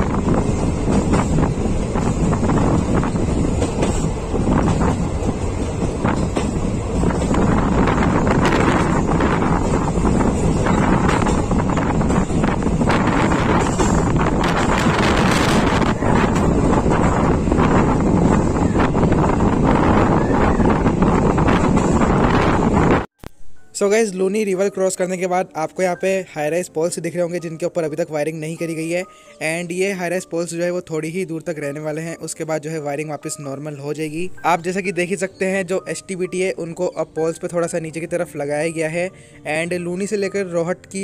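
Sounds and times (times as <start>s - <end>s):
train wheels rumbling on track: 0.0s - 23.1s
wind buffeting microphone: 0.0s - 23.1s.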